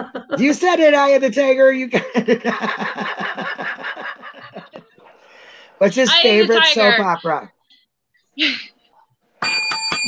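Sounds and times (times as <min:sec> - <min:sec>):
people laughing over video call: 0:00.0 - 0:00.7, 0:01.8 - 0:05.7.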